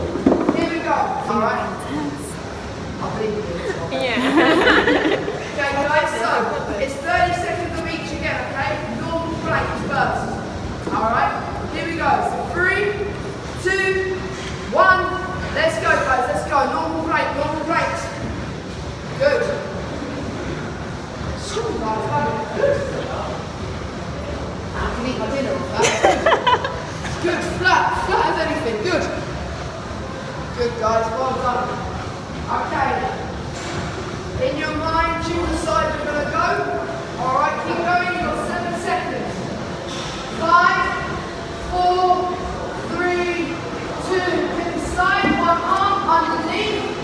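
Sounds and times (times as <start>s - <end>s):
gym hall room noise: 0.0s - 47.0s.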